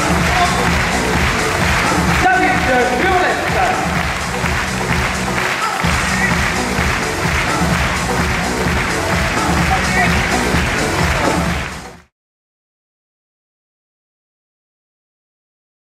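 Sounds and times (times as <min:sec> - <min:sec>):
applause: 0:00.0 - 0:12.1
audience noise: 0:00.0 - 0:12.1
upbeat show music: 0:00.0 - 0:12.1.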